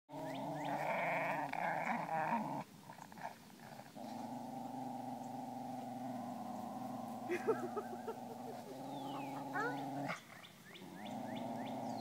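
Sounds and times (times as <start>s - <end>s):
dogs growling: 0.1s - 12.0s.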